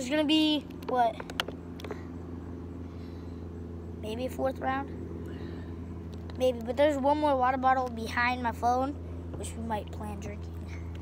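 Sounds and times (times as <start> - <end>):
engine idling hum: 0.0 - 11.0.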